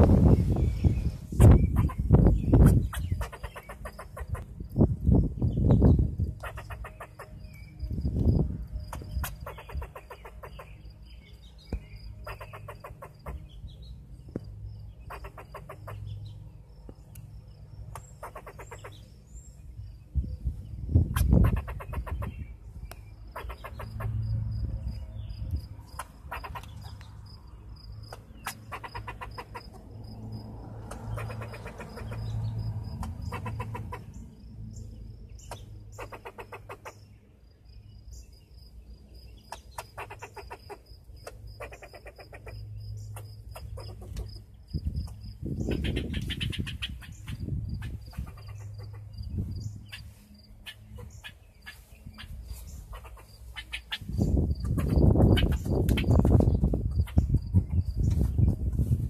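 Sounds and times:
wind rumble on microphone: 0:00.0 - 0:10.6, 0:13.2 - 0:36.0, 0:42.7 - 0:59.0.

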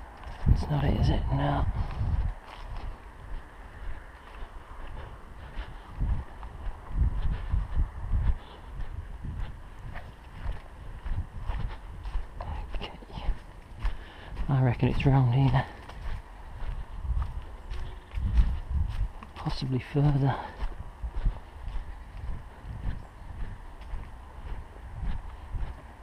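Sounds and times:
footsteps on grass and leaves: 0:00.0 - 0:26.0.

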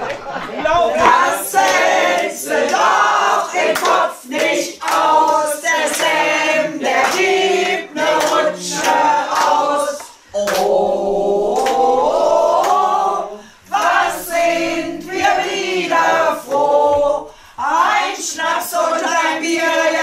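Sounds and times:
mixed choir singing: 0:00.0 - 0:20.0.

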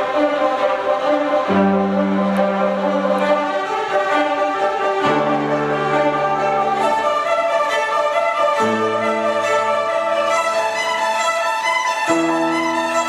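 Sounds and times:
piano chords: 0:00.0 - 0:13.0
violins playing a melody: 0:00.0 - 0:13.0.

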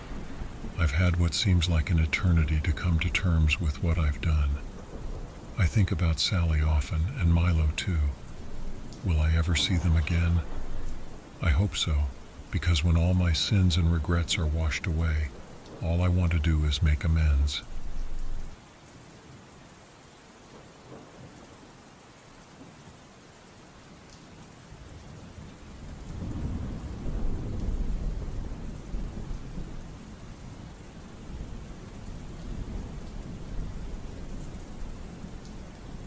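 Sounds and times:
thunder rumbling: 0:00.0 - 0:18.6, 0:26.0 - 0:36.0
steady rain falling: 0:00.0 - 0:36.0.

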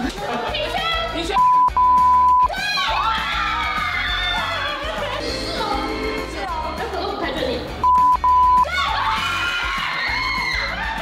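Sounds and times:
music: 0:00.0 - 0:11.0
high censor bleep: 0:01.4 - 0:02.5, 0:07.8 - 0:08.7
excited voices: 0:02.4 - 0:07.7, 0:08.4 - 0:11.0.

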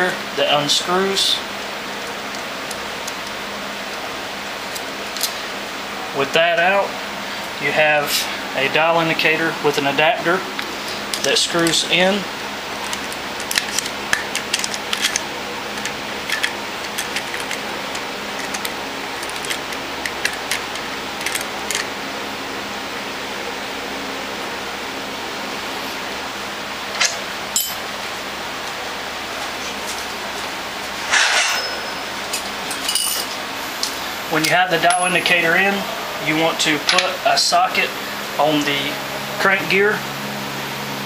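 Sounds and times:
steady background hum: 0:00.0 - 0:41.0.

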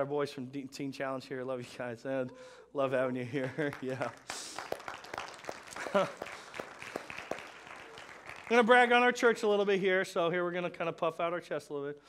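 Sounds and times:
congregation applauding: 0:03.4 - 0:09.6.

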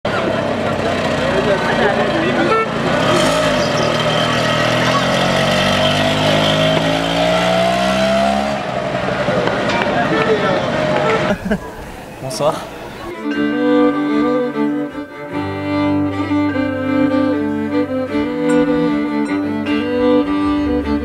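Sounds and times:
vehicle engine accelerating: 0:00.1 - 0:12.2, 0:12.8 - 0:21.0.

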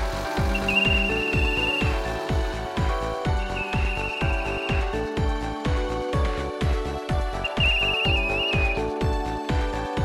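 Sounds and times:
electronic music with kick drum: 0:00.0 - 0:10.0
pea whistle trilling: 0:00.4 - 0:02.2, 0:03.4 - 0:05.1, 0:07.4 - 0:08.9.

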